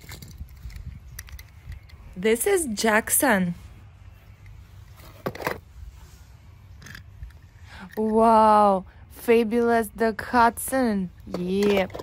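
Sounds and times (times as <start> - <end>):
metal toy cars clicking: 0.0 - 2.0, 11.2 - 12.0.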